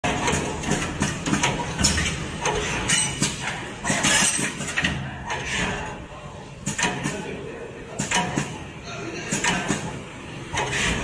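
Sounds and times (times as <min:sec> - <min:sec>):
machine clicks and knocks: 0:00.0 - 0:05.7, 0:06.6 - 0:07.2, 0:08.0 - 0:08.6, 0:09.3 - 0:11.0
pneumatic air hissing: 0:10.6 - 0:11.0.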